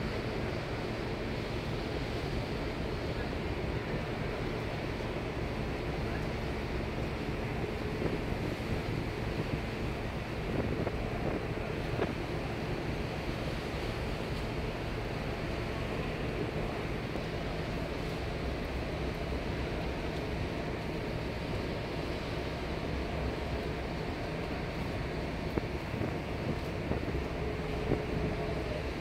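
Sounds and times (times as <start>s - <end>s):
faint low ship hum: 0.0s - 29.0s
sea water rushing along hull: 0.0s - 29.0s
wind buffeting microphone: 6.9s - 17.9s, 22.6s - 29.0s.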